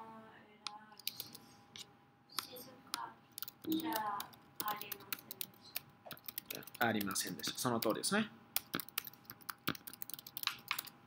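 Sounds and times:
keyboard typing clicks: 0:01.0 - 0:01.4, 0:02.4 - 0:08.0, 0:08.6 - 0:11.0.

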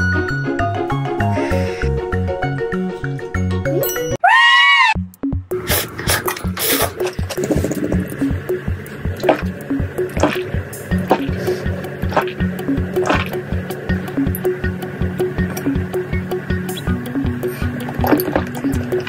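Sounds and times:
music with repeating beat: 0:07.2 - 0:19.0
liquid sounds from drinking: 0:09.0 - 0:14.5, 0:16.8 - 0:19.0.

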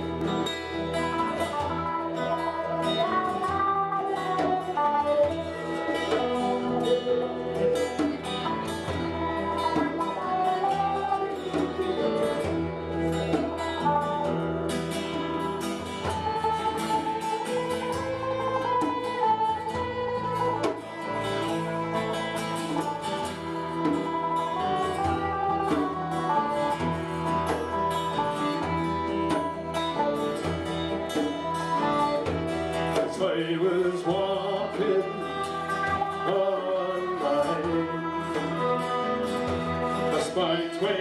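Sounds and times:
bass: 0:00.0 - 0:33.3
fiddle melody: 0:00.0 - 0:41.0
strummed acoustic guitar: 0:00.0 - 0:41.0.

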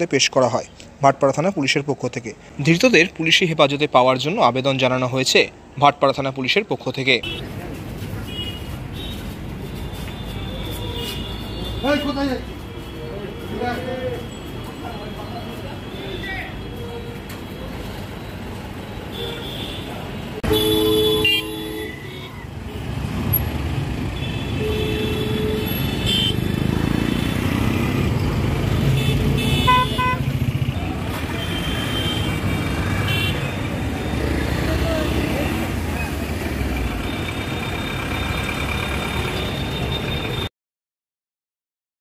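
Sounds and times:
rumble of passing traffic: 0:00.0 - 0:40.5
vehicle horns honking: 0:07.2 - 0:07.5, 0:08.2 - 0:14.3, 0:18.9 - 0:23.0, 0:24.0 - 0:27.8, 0:28.7 - 0:35.4.

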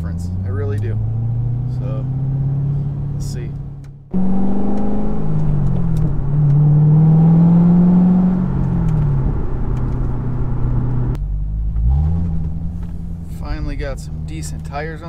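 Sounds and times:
car engine under throttle: 0:00.0 - 0:15.0.

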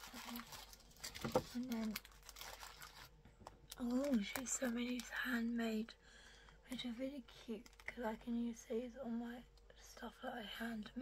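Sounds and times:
cellophane crinkling: 0:00.0 - 0:05.6, 0:07.3 - 0:08.3.

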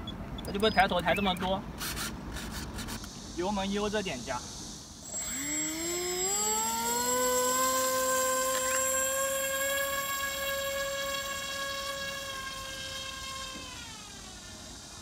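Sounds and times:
electric motor and propeller whine: 0:05.0 - 0:15.0.

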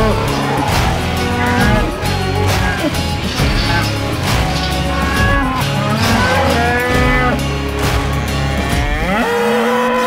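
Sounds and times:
background music with a beat: 0:00.0 - 0:10.0
cattle mooing: 0:00.0 - 0:10.0.

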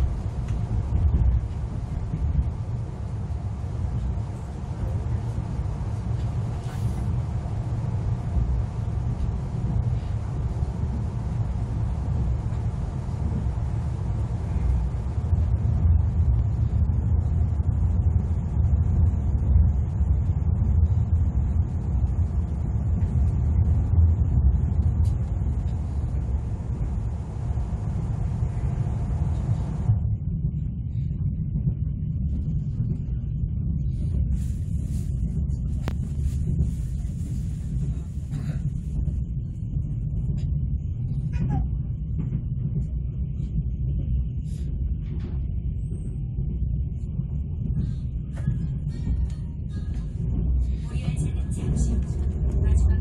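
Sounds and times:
electric train rumbling on track: 0:00.0 - 0:53.0.

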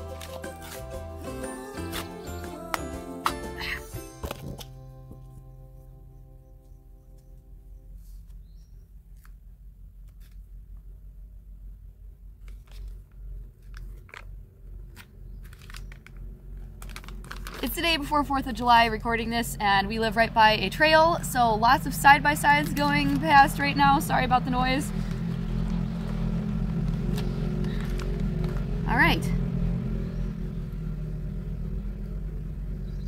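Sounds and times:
paper being handled: 0:00.0 - 0:02.5, 0:12.4 - 0:17.8
background music: 0:00.0 - 0:07.0
low engine rumble: 0:00.0 - 0:33.0
cardboard can crinkling: 0:12.4 - 0:17.8, 0:25.0 - 0:28.7.

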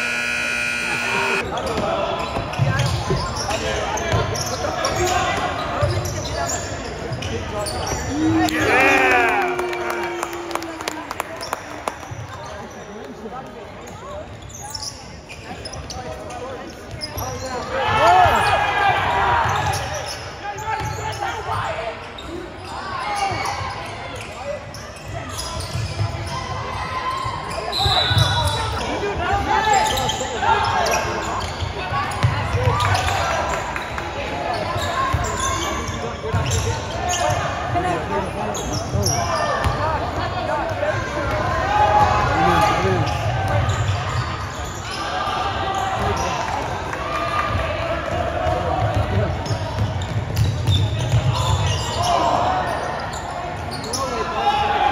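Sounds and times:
spectators' voices and shouts: 0:00.0 - 0:11.2, 0:16.5 - 0:24.6, 0:26.2 - 0:50.3, 0:51.0 - 0:54.9.

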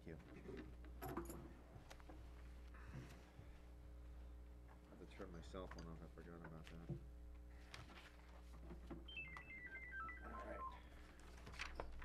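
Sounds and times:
cell phone power-off tune: 0:09.1 - 0:10.9.

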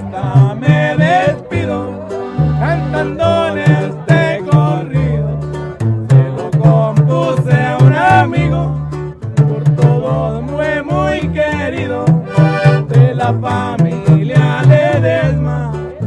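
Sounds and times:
accordion playing melodic runs: 0:00.0 - 0:04.8, 0:12.1 - 0:13.7
bass notes: 0:00.0 - 0:16.0
drum beat: 0:06.1 - 0:08.4, 0:11.8 - 0:15.2.

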